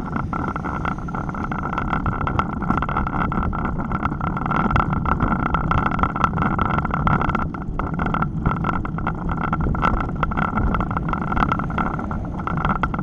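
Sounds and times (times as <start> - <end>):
wind and road noise: 0.0 - 13.0
bicycle clicks and rattles: 0.2 - 13.0.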